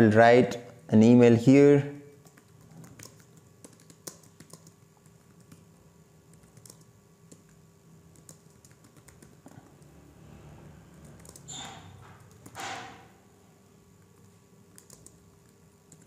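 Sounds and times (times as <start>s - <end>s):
typing on computer keyboard: 2.1s - 5.6s, 6.3s - 9.9s, 10.9s - 12.9s, 14.1s - 16.0s.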